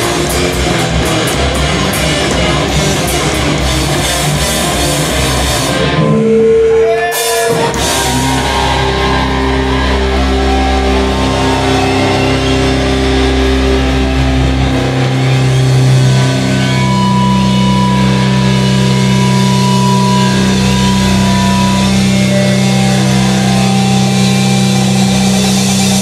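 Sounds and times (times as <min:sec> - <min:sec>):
droning electric guitars and bass: 0:00.0 - 0:26.0.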